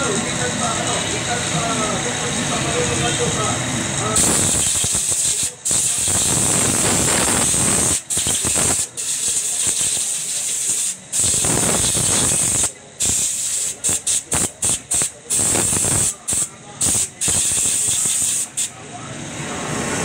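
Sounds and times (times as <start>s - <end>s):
compressed air blowgun hissing: 4.2s - 18.7s.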